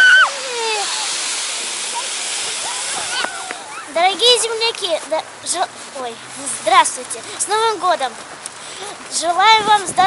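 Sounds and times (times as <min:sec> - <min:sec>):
children calling: 0:00.0 - 0:07.9
snow tubes sliding on snow: 0:00.0 - 0:10.0.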